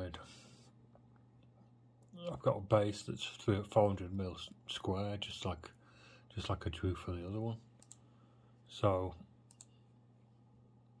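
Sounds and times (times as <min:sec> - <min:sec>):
faint low hum: 0:00.0 - 0:11.0
computer mouse clicks: 0:07.8 - 0:08.1, 0:09.5 - 0:09.8.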